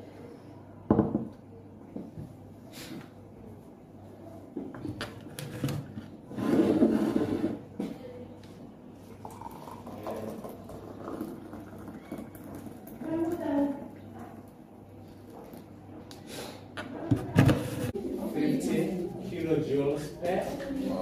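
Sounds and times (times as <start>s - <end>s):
hot water poured into mug: 9.0s - 13.1s.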